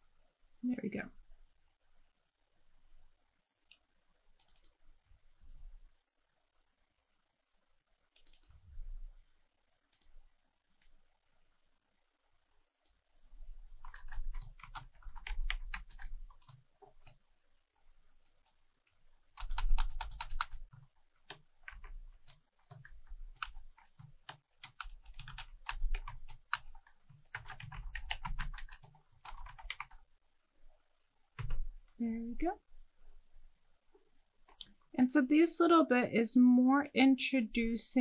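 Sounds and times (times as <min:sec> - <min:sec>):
typing on computer keyboard: 0:04.3 - 0:04.8, 0:08.2 - 0:08.6, 0:13.7 - 0:17.2, 0:19.3 - 0:30.0, 0:31.4 - 0:32.0.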